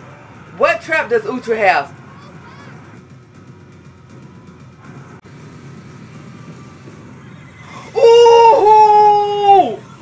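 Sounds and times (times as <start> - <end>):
low soundtrack rumble: 0.0 - 10.0.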